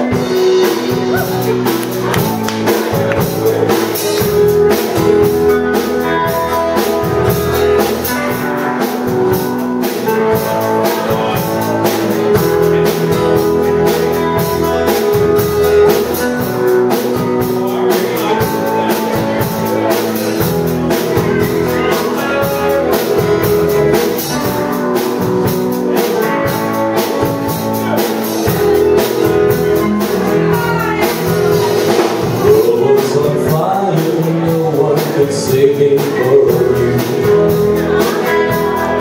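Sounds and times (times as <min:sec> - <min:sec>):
live band playing: 0:00.0 - 0:39.0
steady drum beat: 0:00.0 - 0:39.0.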